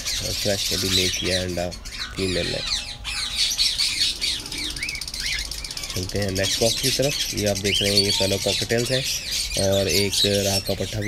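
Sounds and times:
parrots chirping and chattering: 0:00.0 - 0:11.0
whistled bird calls: 0:00.0 - 0:11.0.

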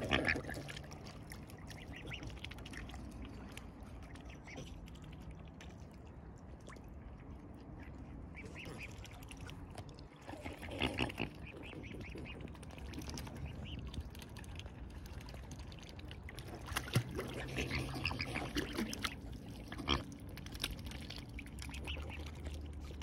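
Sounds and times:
wet slurping and clicking: 0:00.0 - 0:05.8, 0:08.6 - 0:23.0
small water splashes: 0:00.0 - 0:23.0
swans dabbling in water: 0:00.0 - 0:23.0.

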